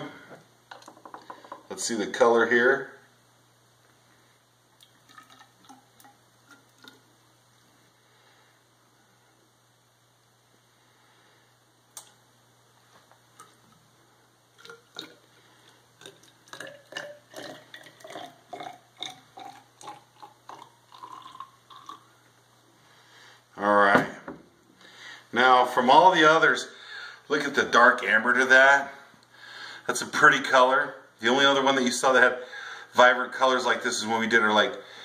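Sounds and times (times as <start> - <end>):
liquid gurgling into a cylinder: 14.6 - 22.1.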